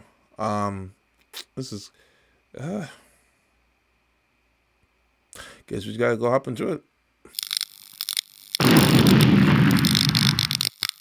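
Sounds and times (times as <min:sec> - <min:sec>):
crackling glitchy clicks: 0:07.3 - 0:11.0.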